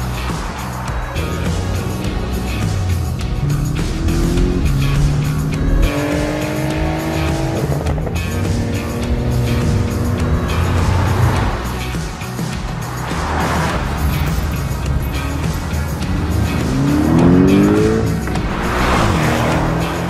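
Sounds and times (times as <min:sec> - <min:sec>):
background music with steady beat: 0:00.0 - 0:20.0
car engine revving: 0:00.0 - 0:20.0
tyre and road noise: 0:00.0 - 0:20.0.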